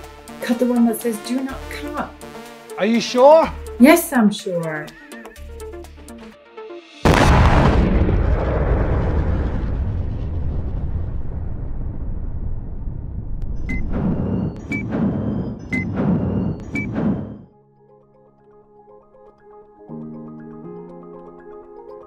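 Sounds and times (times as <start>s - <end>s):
explosion blast: 7.0s - 17.5s
long rumble: 7.1s - 17.5s.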